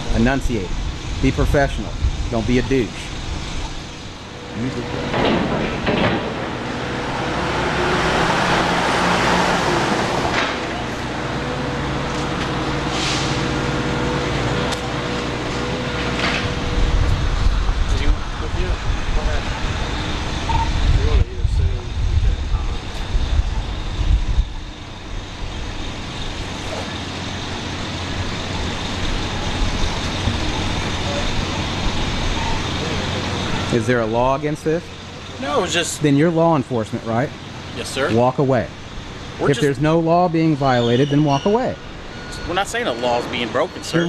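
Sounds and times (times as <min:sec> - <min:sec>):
heavy vehicle rumble: 0:00.0 - 0:44.0
road traffic: 0:00.0 - 0:44.0.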